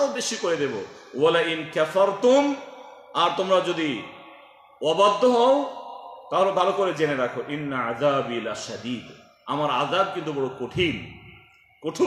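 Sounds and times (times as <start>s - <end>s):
man preaching: 0.0s - 11.2s, 11.8s - 12.0s.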